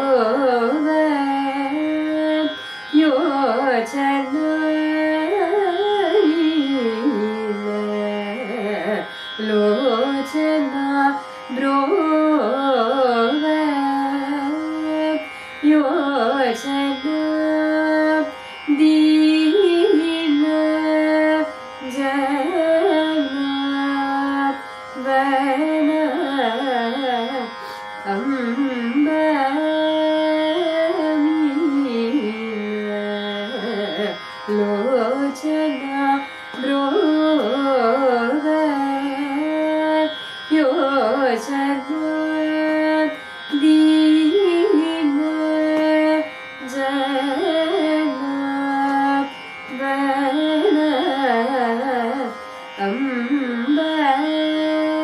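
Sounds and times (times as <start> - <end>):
woman singing with wavering ornaments: 0.0 - 55.0.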